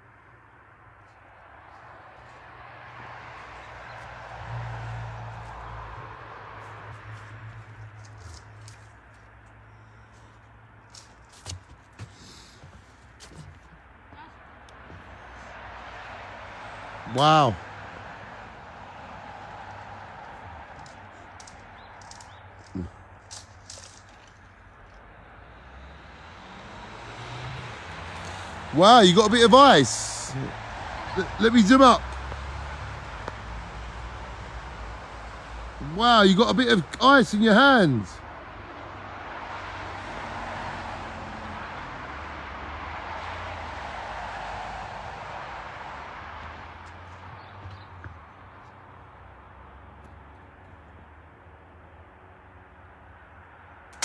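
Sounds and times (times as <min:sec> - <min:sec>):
cars driving past: 0:00.0 - 0:54.0
distant road traffic hum: 0:00.0 - 0:54.0.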